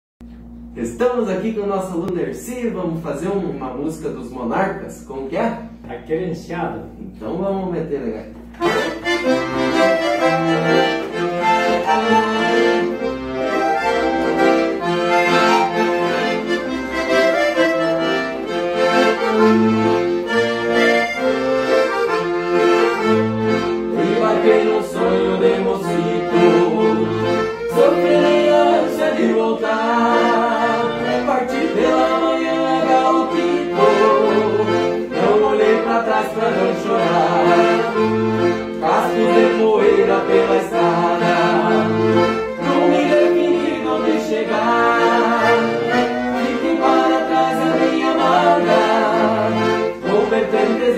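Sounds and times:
two accordions playing a duet: 8.5 - 50.9.

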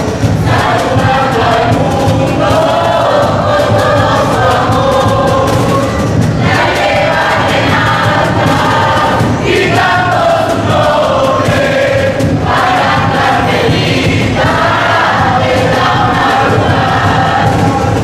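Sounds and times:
group of people singing: 0.0 - 18.0.

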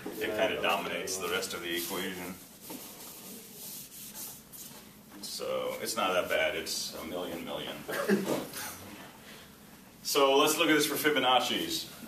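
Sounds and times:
eraser wiping a whiteboard: 0.1 - 5.0.

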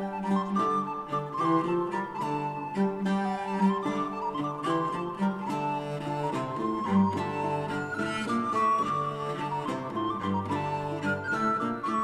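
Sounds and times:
plucked lute notes: 0.0 - 12.0.

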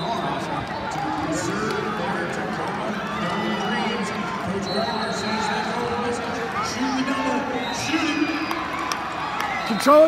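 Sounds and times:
crowd hubbub: 0.0 - 10.0.

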